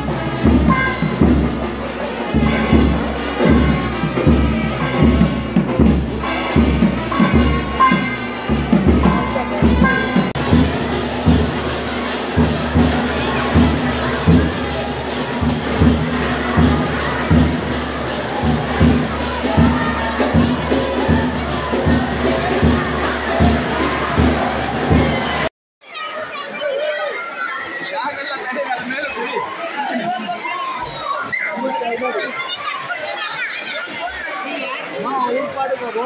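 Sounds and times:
dense ringing wash: 0.0 - 25.5
percussion band drumming: 0.0 - 25.5
crowd shouting and cheering: 0.0 - 36.0.

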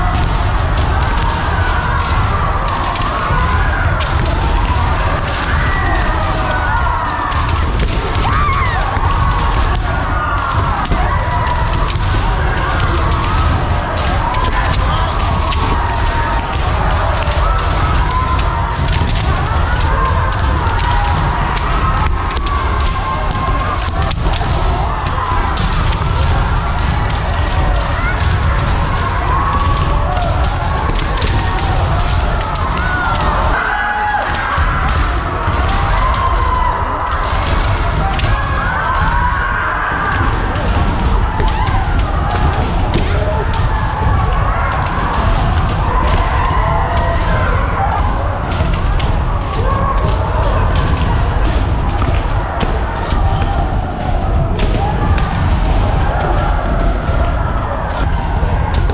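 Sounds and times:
many people shouting: 0.0 - 58.9.

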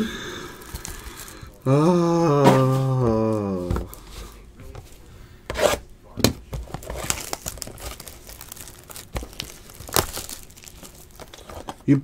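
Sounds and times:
plastic wrap crinkling and tearing: 0.5 - 1.6, 6.6 - 12.0.

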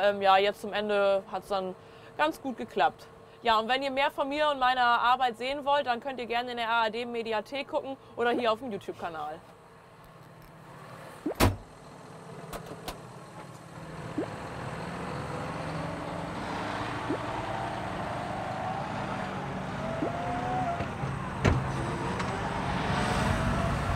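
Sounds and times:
sharp clunk: 11.3 - 11.6.

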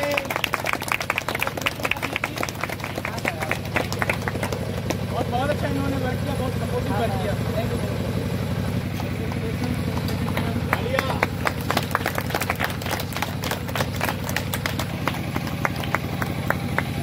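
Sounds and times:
small crowd clapping: 0.0 - 5.6, 8.9 - 17.0
low engine hum: 0.0 - 17.0.

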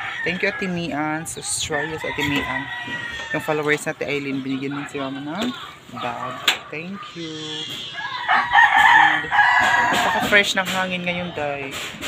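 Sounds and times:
rooster crowing: 0.0 - 1.0, 1.6 - 3.8, 7.2 - 10.4.

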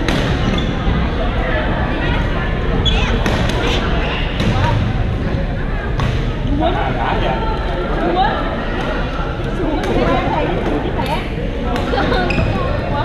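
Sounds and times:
hubbub of players' voices: 0.0 - 13.0.

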